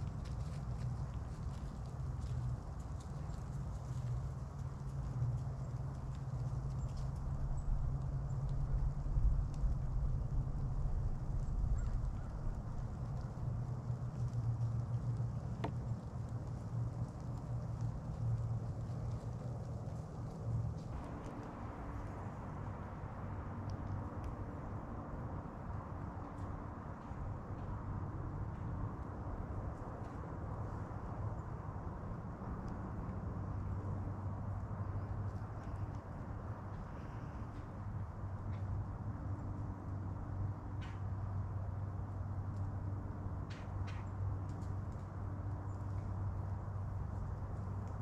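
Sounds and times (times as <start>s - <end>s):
wind buffeting microphone: 0.0s - 36.9s
faint steady hum: 0.0s - 48.0s.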